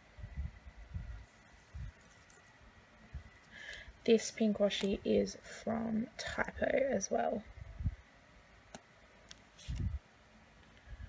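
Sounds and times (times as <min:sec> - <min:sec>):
hands smoothing tape on paper: 0:09.3 - 0:10.0.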